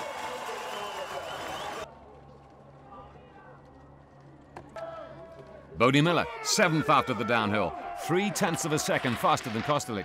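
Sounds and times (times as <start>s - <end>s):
spectators cheering and shouting: 0.0s - 1.9s, 4.7s - 10.0s.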